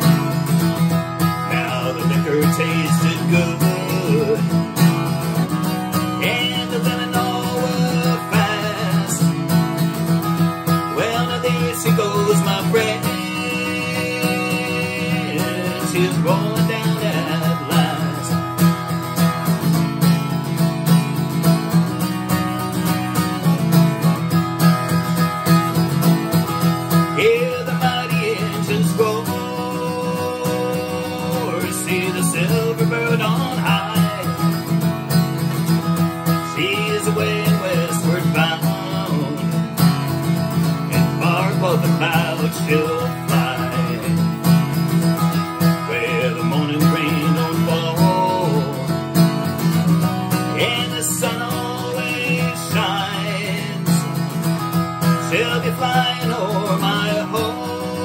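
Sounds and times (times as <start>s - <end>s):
acoustic guitar strumming: 0.0s - 58.0s
man singing: 1.3s - 19.0s, 26.9s - 58.0s.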